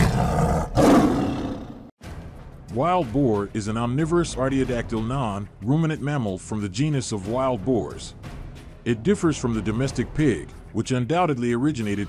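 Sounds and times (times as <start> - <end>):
animal roar: 0.0 - 1.9.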